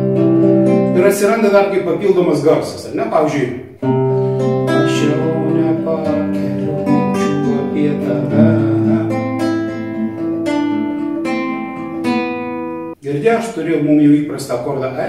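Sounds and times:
fingerpicked classical guitar: 0.0s - 2.0s, 3.8s - 13.0s.

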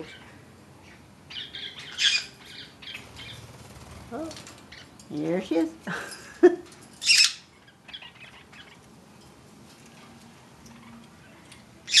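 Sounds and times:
parakeet shrill call: 0.8s - 3.4s, 7.0s - 8.8s.

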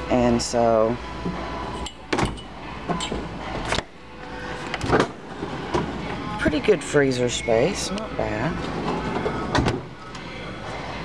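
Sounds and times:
refrigerator hum: 0.0s - 11.0s.

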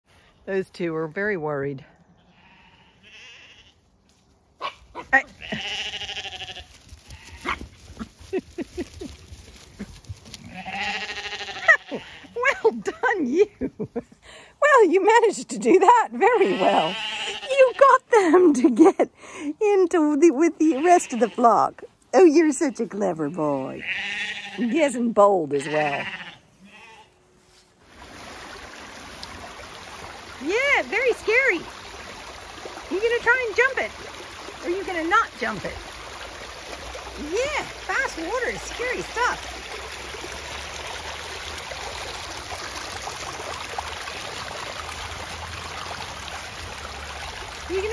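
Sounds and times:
sheep bleating: 2.2s - 3.8s, 5.1s - 7.6s, 10.4s - 12.4s, 16.3s - 17.8s, 20.7s - 21.6s, 23.6s - 24.9s, 25.5s - 27.2s
fast water running down a channel: 27.8s - 47.9s.

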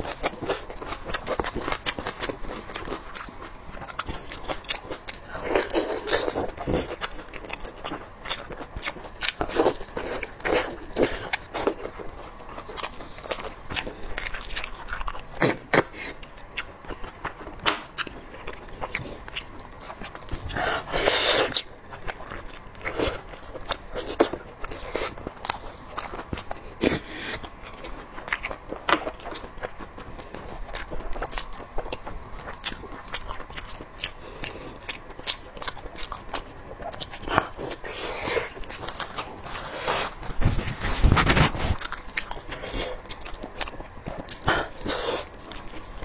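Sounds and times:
biting and chewing meat: 0.0s - 46.0s.

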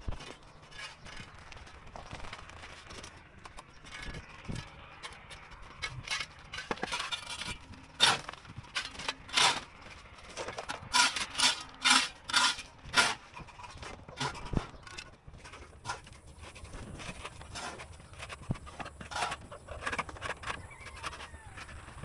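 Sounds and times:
shovel scraping gravel: 3.9s - 22.0s.

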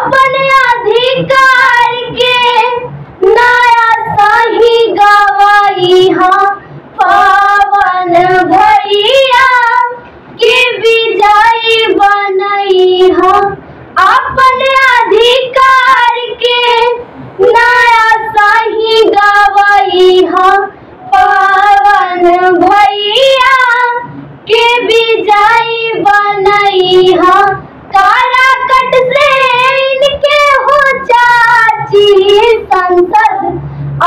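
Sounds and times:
girls singing unaccompanied: 0.0s - 33.6s.

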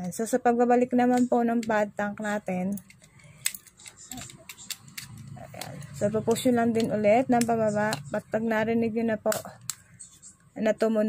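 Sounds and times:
plastic clicks: 2.7s - 8.2s.

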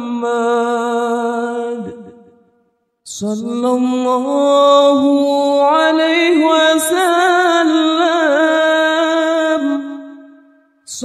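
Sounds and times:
person singing unaccompanied: 3.1s - 11.0s.

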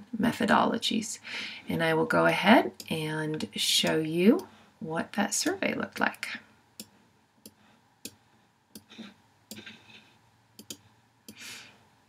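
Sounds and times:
soft breath: 1.2s - 1.7s, 7.5s - 10.3s, 11.3s - 12.0s
computer mouse clicks: 10.6s - 11.4s.

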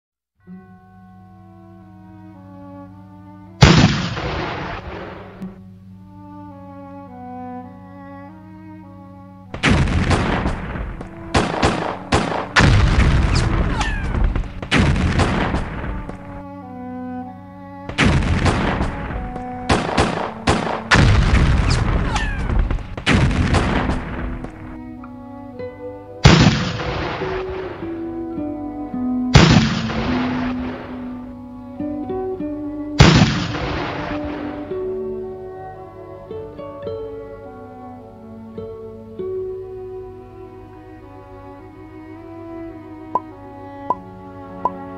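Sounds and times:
background music: 0.4s - 44.9s
cannon fire: 3.6s - 5.2s, 9.6s - 16.4s, 17.9s - 24.5s, 26.2s - 27.6s, 29.4s - 31.0s, 33.0s - 34.6s.

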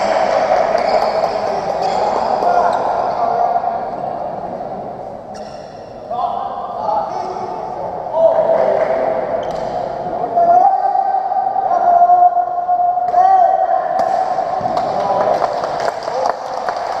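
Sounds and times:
shoes squeaking on wooden court: 0.8s - 3.0s, 5.3s - 6.0s.

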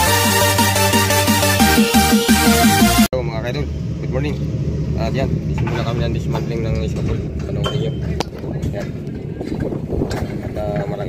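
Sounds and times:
construction site rumble: 3.2s - 11.0s.

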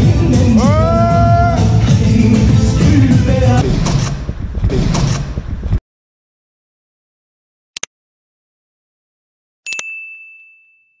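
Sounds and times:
mouse click sound effects: 9.7s - 9.9s
bell ding: 9.7s - 11.0s.

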